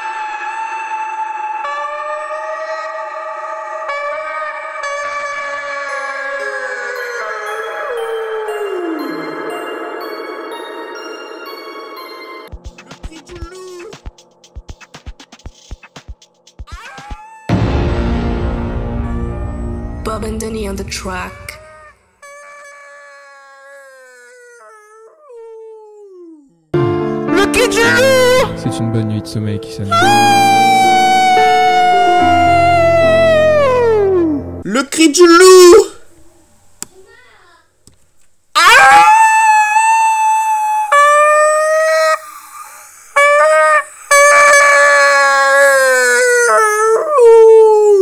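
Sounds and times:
wolf-style howl: 0.0s - 12.0s, 21.1s - 26.7s, 29.8s - 34.4s, 38.6s - 48.0s.

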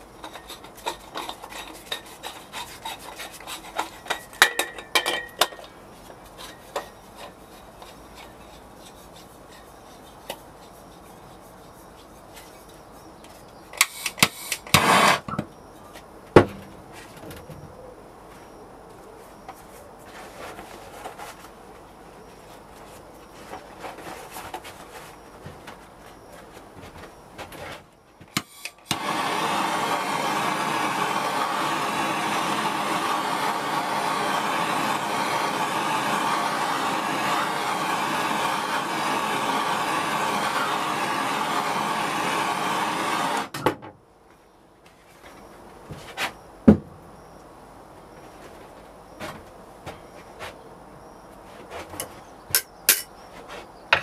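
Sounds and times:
gas torch running: 13.8s - 15.3s, 28.3s - 43.6s.

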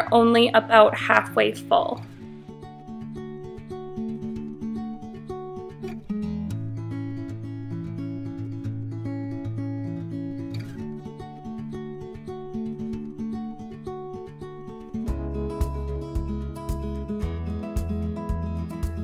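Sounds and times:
acoustic guitar music: 0.0s - 19.0s
bass line: 15.1s - 19.0s.

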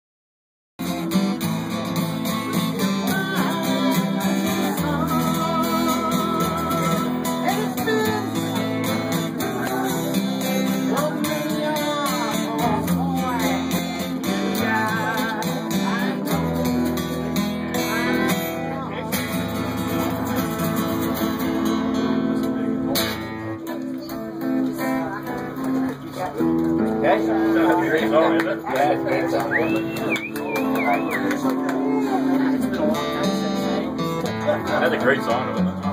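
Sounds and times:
acoustic guitars strumming: 0.8s - 35.9s.

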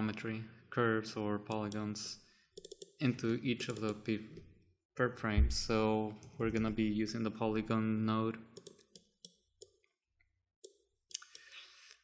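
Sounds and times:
keyboard and mouse clicks: 2.6s - 3.0s, 3.6s - 4.0s, 8.6s - 10.0s.

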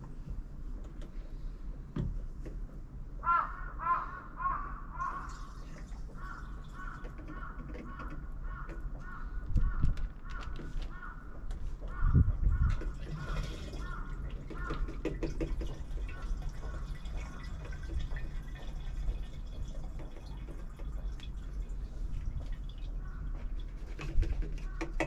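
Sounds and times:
bird cawing: 3.2s - 15.2s, 23.0s - 23.5s, 24.4s - 25.0s
dull low thumps: 11.4s - 12.9s.

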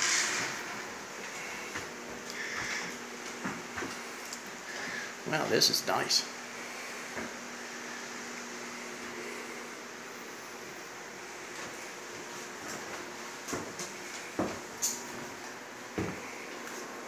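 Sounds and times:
faint hum: 0.0s - 17.0s
footsteps on wooden floorboards: 1.3s - 4.1s, 11.5s - 16.8s.

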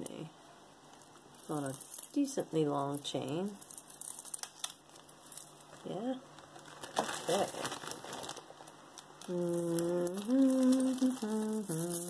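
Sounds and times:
plastic bag crinkling: 3.6s - 12.0s
woman humming: 9.2s - 12.0s.

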